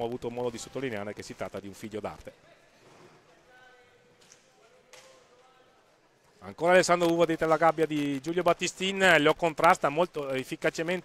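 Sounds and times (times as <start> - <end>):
faint arena ambience: 0.0 - 11.0.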